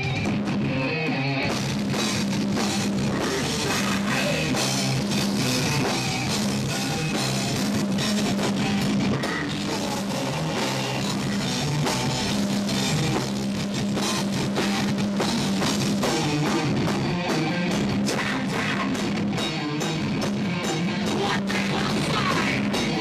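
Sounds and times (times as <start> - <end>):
distorted guitars and bass: 0.0 - 23.0
pounding drum kit with cymbals: 0.0 - 23.0.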